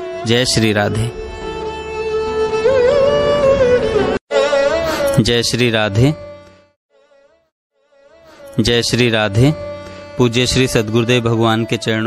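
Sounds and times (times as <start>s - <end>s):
devotional music: 0.0s - 12.0s
person speaking: 4.8s - 6.2s.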